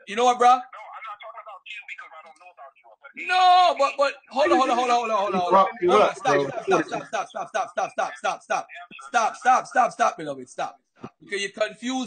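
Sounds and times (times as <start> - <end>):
voice over online call: 0.0 - 12.0.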